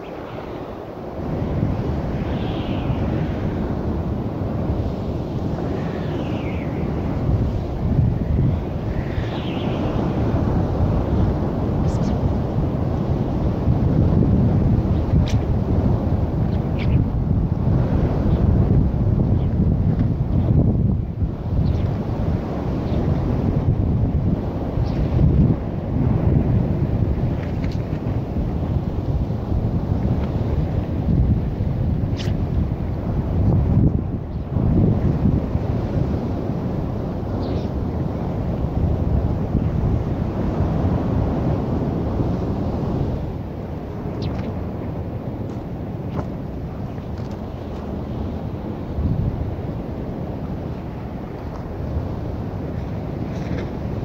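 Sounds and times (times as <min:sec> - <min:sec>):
wind buffeting microphone: 0:00.0 - 0:54.0.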